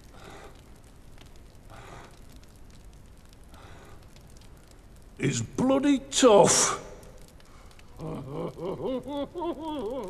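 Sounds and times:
man breathing softly: 0.0s - 1.0s, 1.6s - 2.6s, 3.4s - 4.5s.

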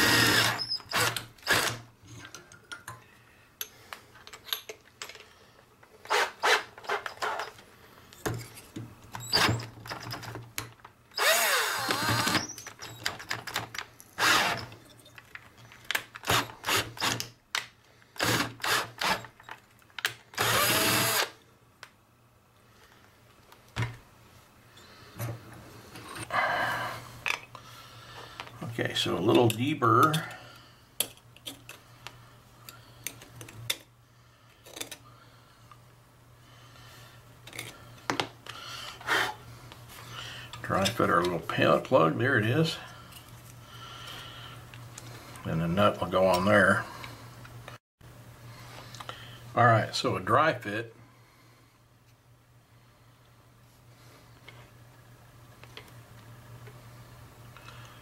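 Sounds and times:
power drill boring through metal: 0.0s - 1.8s, 11.2s - 12.6s, 14.2s - 14.7s, 20.4s - 21.4s
faint steady hum: 0.0s - 58.0s.

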